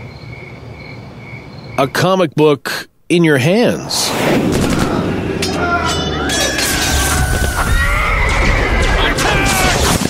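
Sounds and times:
rumbling booms and crashes: 0:04.0 - 0:05.8, 0:06.6 - 0:10.0
held high tone: 0:05.4 - 0:07.7.

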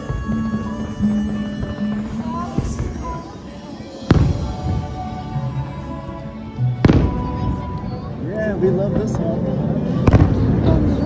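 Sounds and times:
firework bursting with boom: 0:00.0 - 0:03.4, 0:04.1 - 0:05.2, 0:06.8 - 0:07.8, 0:10.0 - 0:11.0
music: 0:00.0 - 0:11.0.

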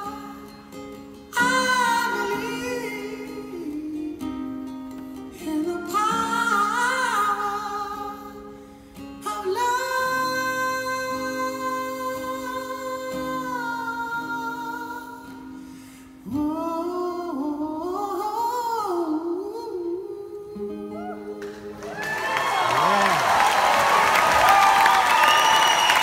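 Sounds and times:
acoustic guitar chords: 0:00.0 - 0:21.9
man singing: 0:01.3 - 0:04.4, 0:09.2 - 0:15.3, 0:16.3 - 0:21.8.

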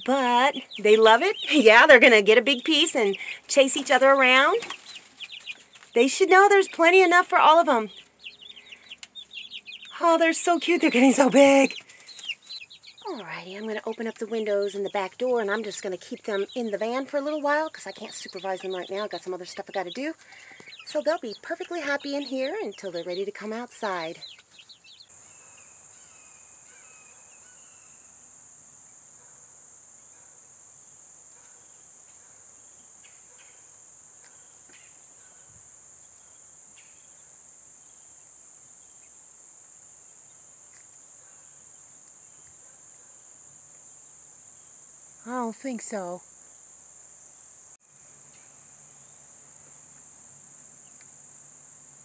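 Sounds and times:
faint chirps: 0:00.0 - 0:28.3
insects droning: 0:00.0 - 0:52.0.

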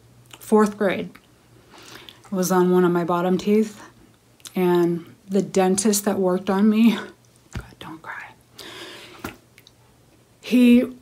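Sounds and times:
breath in: 0:08.6 - 0:09.3.

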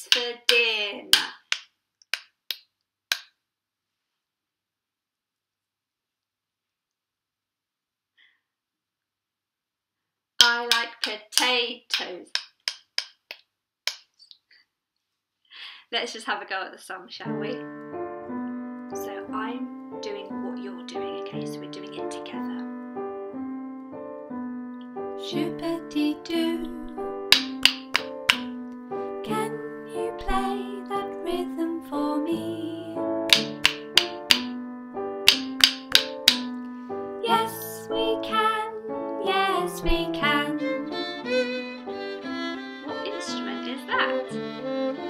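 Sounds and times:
wooden rhythm sticks tapping: 0:00.0 - 0:03.4, 0:10.4 - 0:14.4, 0:26.9 - 0:28.8, 0:33.3 - 0:34.6, 0:35.2 - 0:36.7
keyboard accompaniment: 0:17.3 - 0:45.0
person singing: 0:25.2 - 0:27.4, 0:28.3 - 0:33.3, 0:37.2 - 0:41.7.

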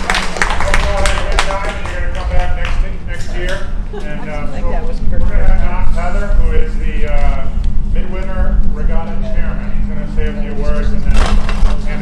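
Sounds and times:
steady low rumble: 0:00.0 - 0:12.0
people chatting: 0:00.3 - 0:12.0.

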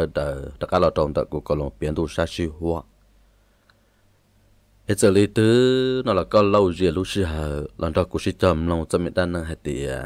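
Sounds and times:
man narrating: 0:00.0 - 0:02.9, 0:04.9 - 0:10.0
faint click: 0:03.6 - 0:03.8.

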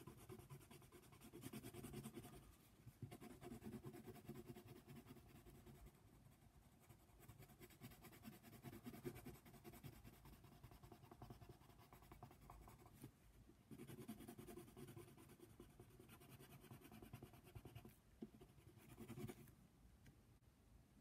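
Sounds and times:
pencil scratching on paper: 0:00.0 - 0:13.1, 0:13.7 - 0:19.5.

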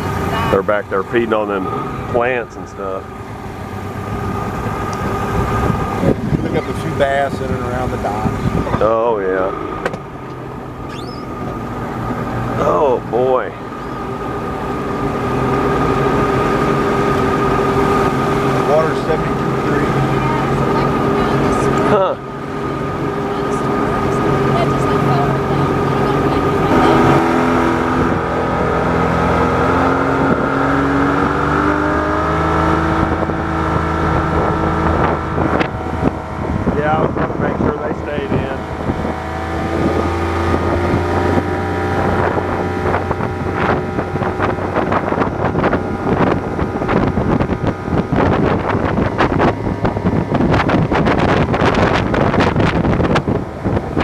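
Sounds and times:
outboard motor running: 0:00.0 - 0:54.0
wind buffeting microphone: 0:00.0 - 0:54.0.

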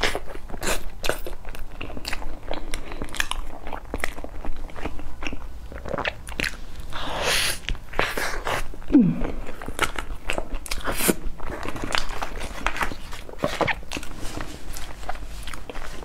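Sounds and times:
chewing soft cake: 0:00.0 - 0:16.0.

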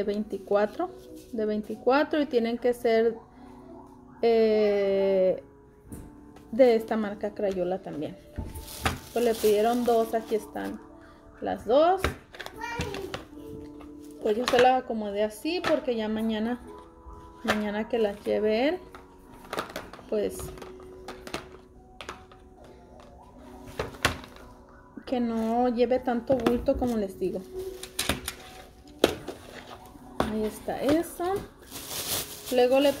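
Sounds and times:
background music: 0:00.0 - 0:33.0
child's voice: 0:12.5 - 0:13.2.

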